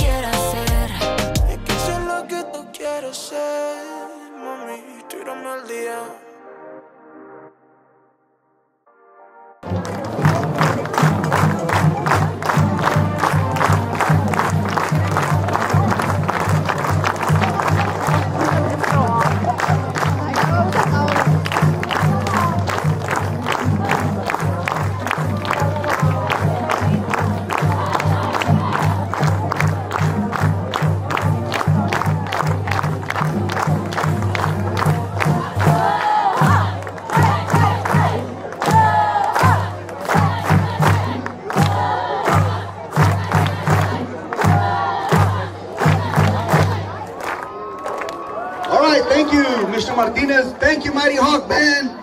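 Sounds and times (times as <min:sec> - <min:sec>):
heavy low drum beat: 0:00.0 - 0:02.1
cheer squad shouting chant: 0:23.4 - 0:29.8, 0:35.2 - 0:49.7.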